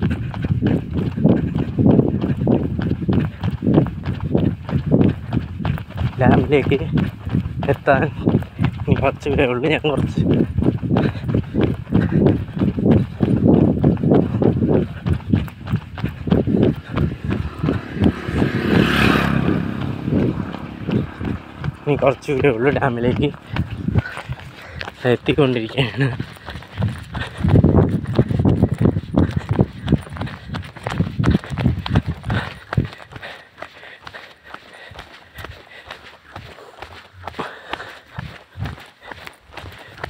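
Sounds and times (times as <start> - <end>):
running footsteps on pavement: 0.0 - 40.0.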